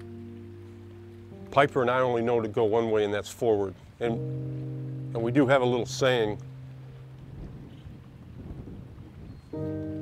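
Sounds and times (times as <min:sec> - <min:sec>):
background music: 0:00.0 - 0:07.4, 0:09.6 - 0:10.0.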